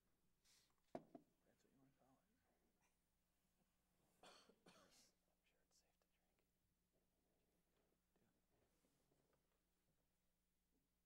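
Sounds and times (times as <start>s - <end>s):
whispered speech: 1.4s - 3.0s, 4.6s - 6.4s, 7.7s - 9.6s.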